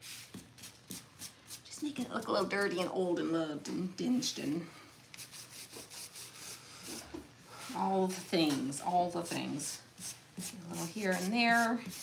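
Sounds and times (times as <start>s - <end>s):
paintbrush rubbing on burlap: 0.0s - 1.6s, 5.2s - 12.0s.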